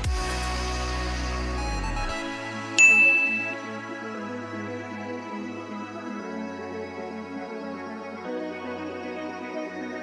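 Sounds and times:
soft background music: 1.3 - 10.0
bright ding: 2.8 - 3.6.

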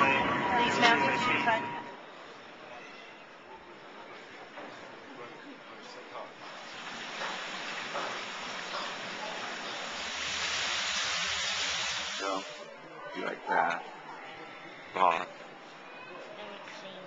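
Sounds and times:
water cascading over stone: 6.5 - 12.6.

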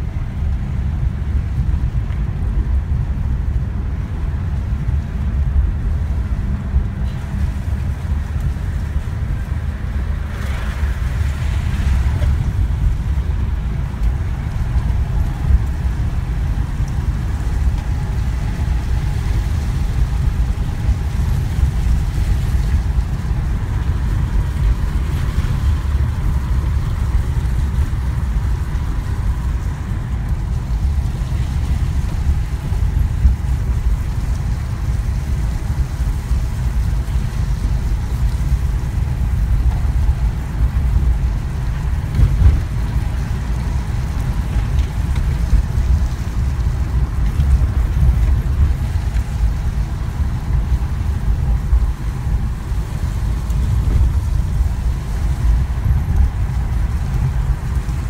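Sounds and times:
car cabin road rumble: 0.0 - 58.0.

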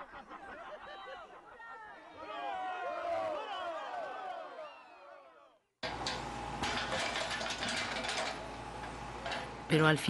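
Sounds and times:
excavator engine humming: 5.8 - 10.0
rubble clattering and crunching: 6.6 - 8.5.

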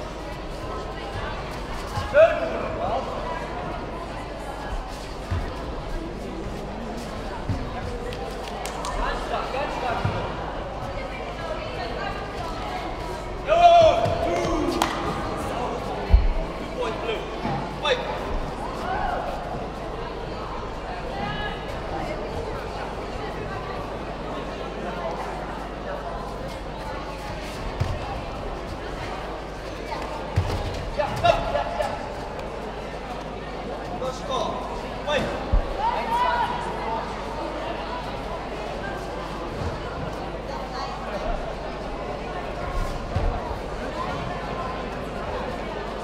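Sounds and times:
coaches and spectators shouting: 13.4 - 15.8, 34.1 - 37.1.

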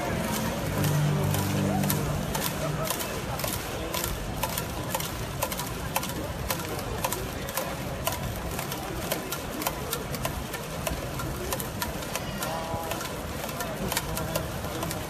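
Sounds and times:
crowd clapping: 0.0 - 7.9
crowd hum: 0.0 - 15.0.

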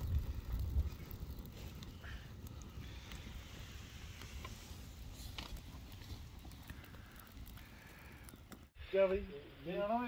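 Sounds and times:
wind rumble on microphone: 0.0 - 2.0
campfire crackling: 0.0 - 10.0.

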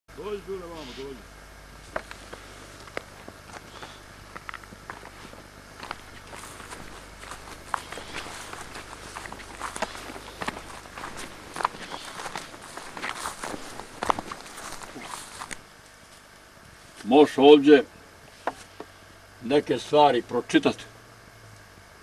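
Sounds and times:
footsteps through dry grass: 1.7 - 17.0.

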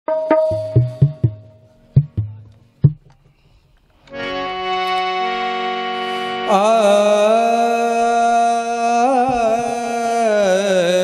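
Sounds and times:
hand drum strokes: 0.1 - 3.5
harmonium holding a chord: 4.1 - 10.6.

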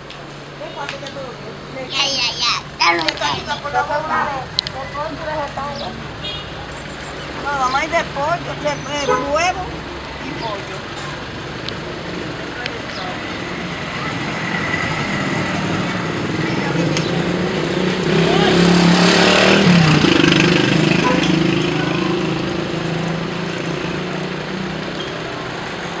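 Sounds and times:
street noise: 0.0 - 26.0
motor vehicle passing by: 1.9 - 26.0.

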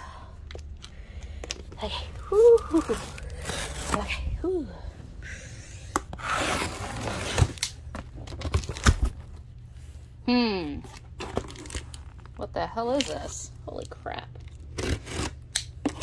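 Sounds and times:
packing tape ripping: 14.5 - 16.0.

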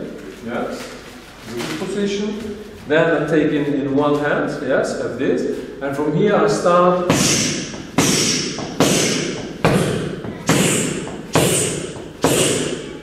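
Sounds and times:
punches smacking focus mitt: 7.1 - 12.8.

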